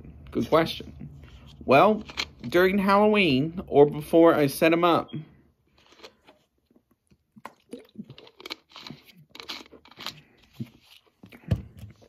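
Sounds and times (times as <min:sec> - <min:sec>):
plastic bottle crinkling: 0:01.1 - 0:02.6, 0:05.7 - 0:12.0
mouth and swallowing sounds: 0:05.8 - 0:11.4.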